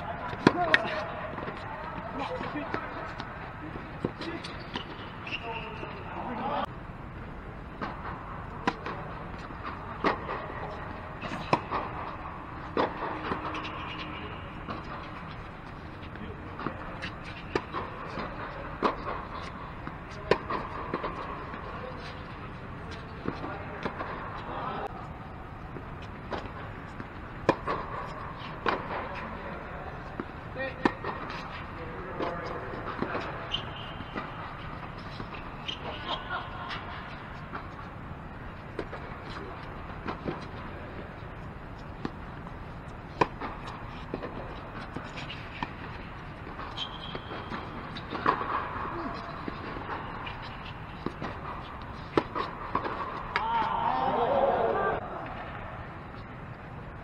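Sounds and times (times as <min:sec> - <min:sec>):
tennis ball bouncing: 0:00.0 - 0:03.4, 0:07.8 - 0:22.2, 0:22.9 - 0:25.0, 0:25.7 - 0:53.5
players' voices: 0:00.0 - 0:56.2
racket striking tennis ball: 0:08.6 - 0:14.9, 0:26.3 - 0:29.4, 0:43.1 - 0:53.5.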